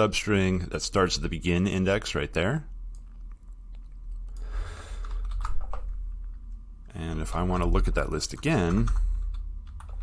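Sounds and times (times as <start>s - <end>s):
typing on computer keyboard: 5.0s - 5.8s.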